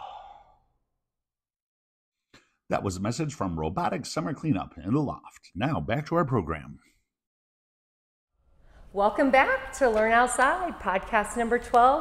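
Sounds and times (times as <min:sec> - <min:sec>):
man sighing: 0:00.0 - 0:00.6.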